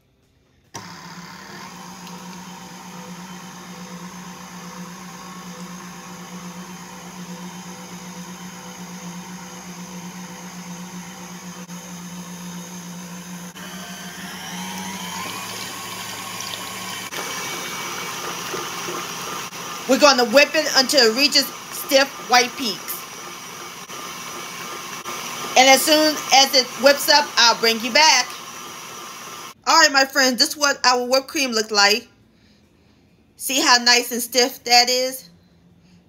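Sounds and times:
stand mixer whipping cream: 0.8s - 29.6s.

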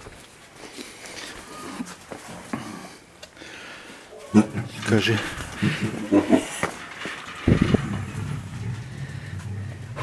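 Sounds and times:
lion low rumbling purr: 7.4s - 10.0s.

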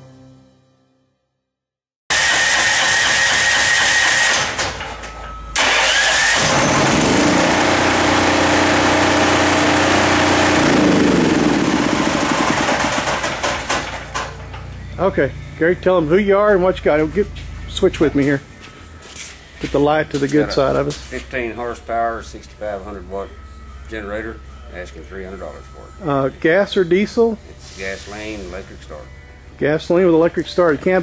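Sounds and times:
generator engine running: 2.1s - 4.8s, 5.5s - 18.4s
electric starter cranking: 2.1s - 14.6s.

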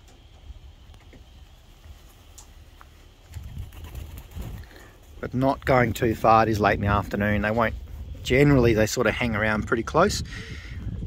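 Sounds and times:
wind rumbling on microphone: 0.4s - 11.0s.

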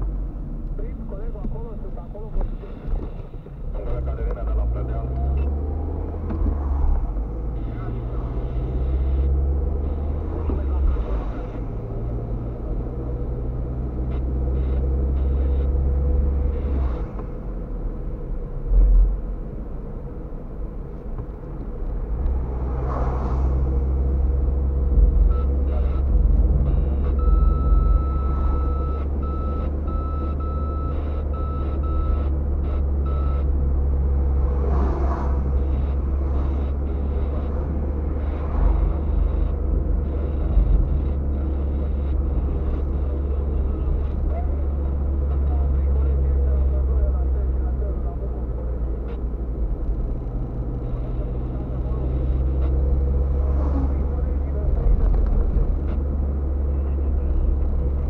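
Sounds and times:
car engine and tyre rumble: 0.0s - 58.0s
vehicles swishing past: 4.0s - 58.0s
short electronic beeps: 7.1s - 17.1s, 24.4s - 34.7s, 35.4s - 49.3s, 50.6s - 54.2s.

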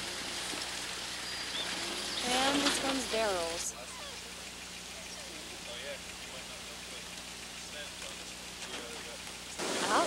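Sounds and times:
hiss-like background noise: 0.0s - 10.0s
low steady hum: 0.0s - 10.0s.

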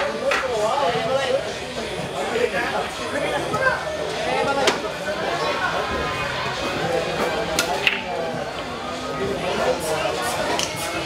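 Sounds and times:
crowd chatter: 0.0s - 11.0s
billiard balls clacking: 7.5s - 8.2s.

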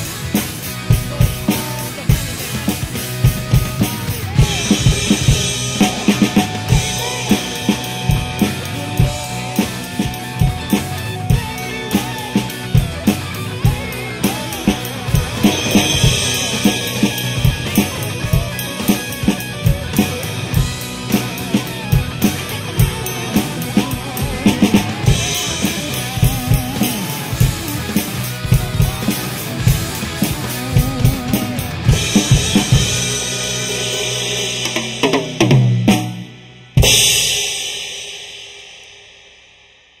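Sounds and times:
acoustic drum kit: 0.0s - 40.0s
rock backing track: 0.0s - 40.0s.

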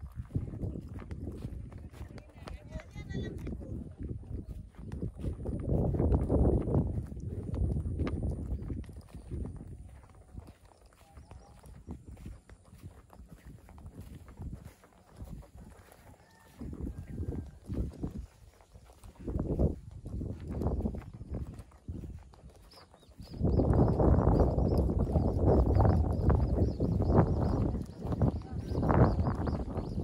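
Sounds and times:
footsteps on rough path: 0.0s - 30.0s
wind on microphone: 0.0s - 30.0s.

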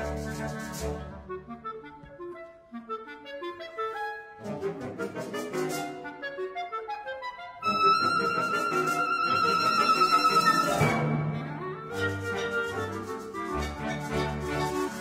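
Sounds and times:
solo clarinet: 0.0s - 15.0s.

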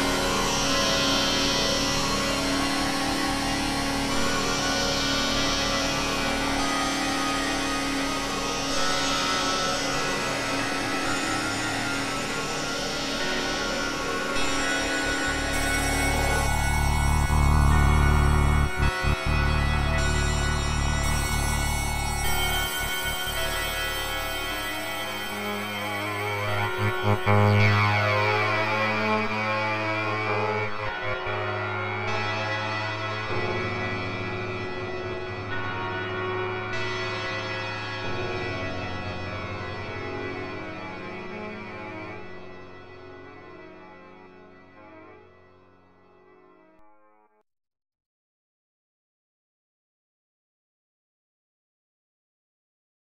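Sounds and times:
low synthesizer drone: 14.8s - 43.3s
deep stuttering bass drone: 15.3s - 23.5s, 26.2s - 27.6s.

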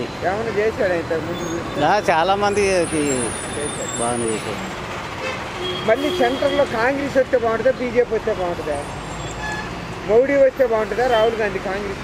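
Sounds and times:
hum of passing traffic: 0.0s - 12.0s.

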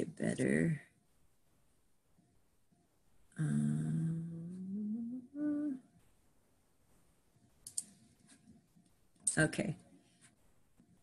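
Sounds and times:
woman humming: 3.4s - 5.9s
computer mouse clicks: 7.6s - 8.0s.

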